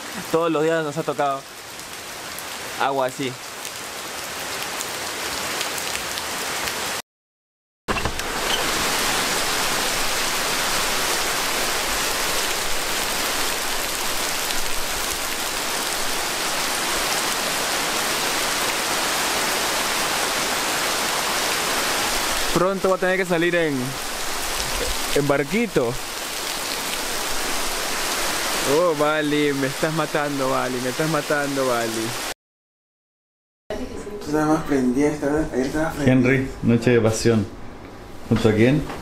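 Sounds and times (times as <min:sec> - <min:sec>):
heavy rain pouring on foliage: 0:00.0 - 0:07.0, 0:08.1 - 0:32.4.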